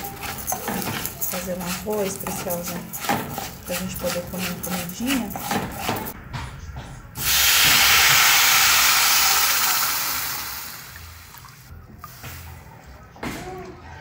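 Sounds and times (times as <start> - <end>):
wooden spoon scraping rice: 0.0 - 6.2
water sizzling in hot pot: 7.2 - 11.7.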